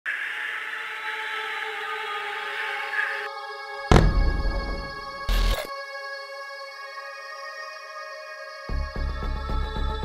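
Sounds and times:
loud boom: 3.9s - 5.5s.

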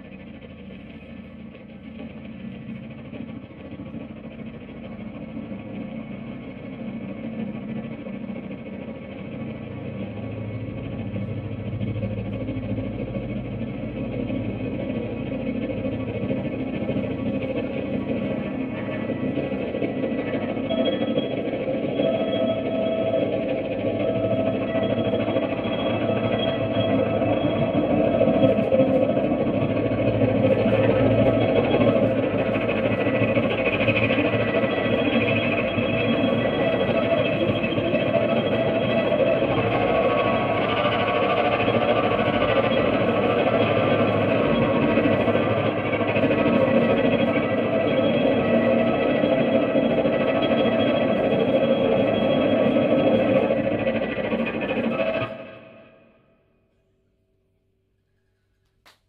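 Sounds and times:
electric guitar sustained notes: 15.7s - 55.6s.

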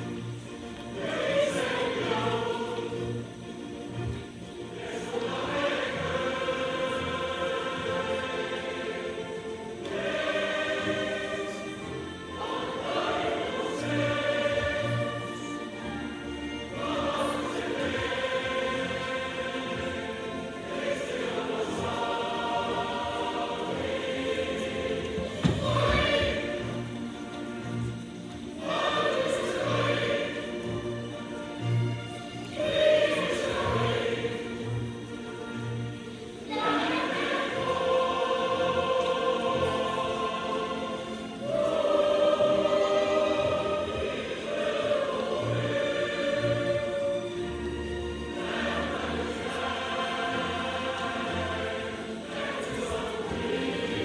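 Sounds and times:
children singing together: 0.0s - 27.9s, 28.5s - 54.0s.

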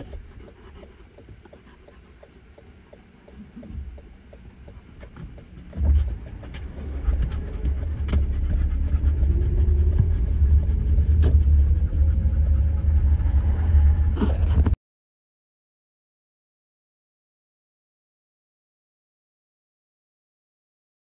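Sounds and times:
car driving at highway speed: 0.0s - 14.8s.

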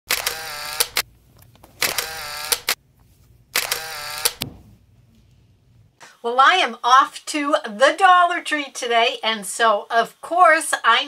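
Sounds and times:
camera whirring and clicks: 0.1s - 2.8s, 3.5s - 4.6s.

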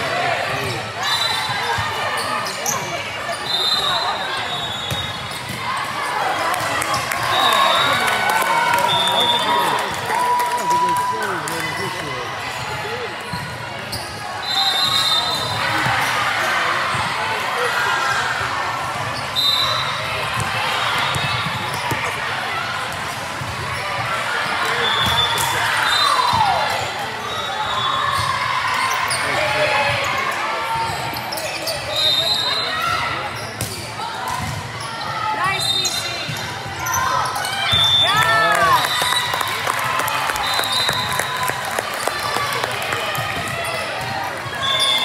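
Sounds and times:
voices in echoing gym: 0.0s - 45.0s.

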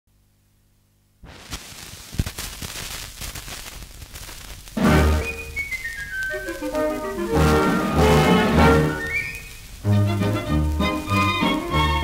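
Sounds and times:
record surface hiss and crackle: 0.1s - 12.0s.

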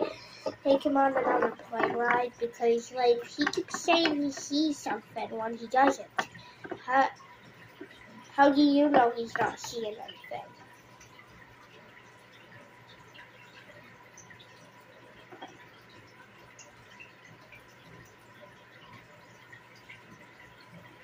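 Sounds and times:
plastic bricks clicking on table: 1.1s - 2.3s, 3.4s - 4.5s.

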